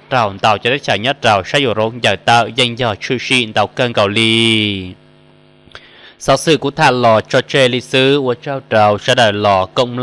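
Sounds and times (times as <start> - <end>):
man narrating: 0.0 - 5.0, 6.2 - 10.0
faint electrical hum: 0.0 - 10.0.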